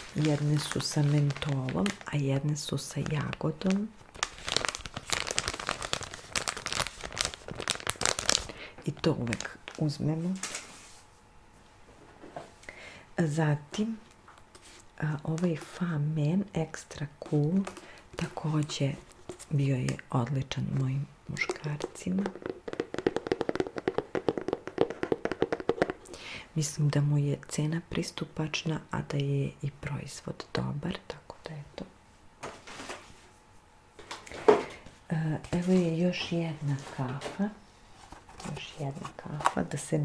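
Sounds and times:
plastic packets crinkling: 0.0s - 10.6s, 21.4s - 26.1s
fingernails tapping plastic bottle: 21.4s - 26.1s.

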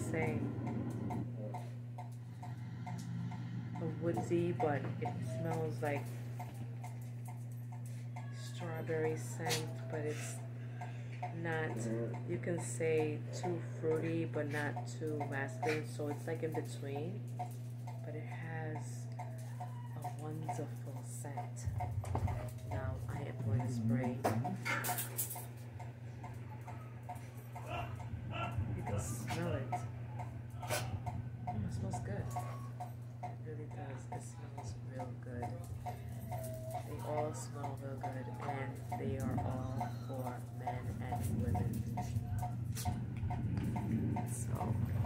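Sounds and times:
soft even ticking: 0.0s - 45.0s
steady low hum: 0.0s - 45.0s.

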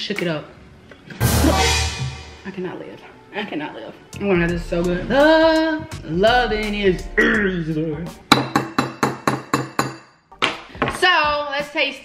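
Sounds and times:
metal spoon tapping ceramic bowl: 8.3s - 10.1s.

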